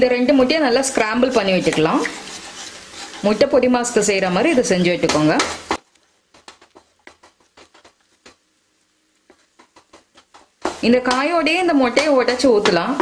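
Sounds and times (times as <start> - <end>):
spatula scraping frying pan: 0.3 - 5.8.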